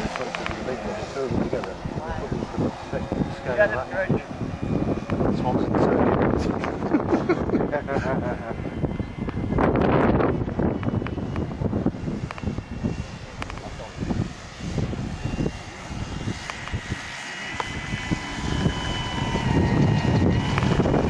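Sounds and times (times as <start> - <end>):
model aircraft engine whine: 0.0 - 21.0.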